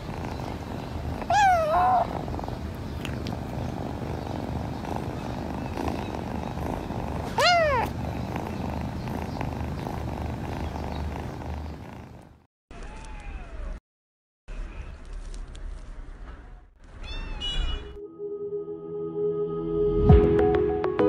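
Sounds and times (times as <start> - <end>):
kitten purring: 0.0 - 12.5
kitten meowing: 1.1 - 2.3, 7.2 - 8.0, 17.0 - 17.8.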